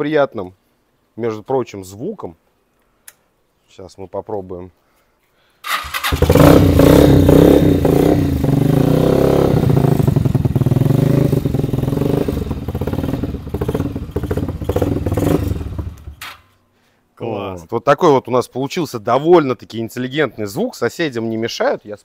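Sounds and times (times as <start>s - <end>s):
motorcycle engine starting and revving: 5.7s - 16.4s.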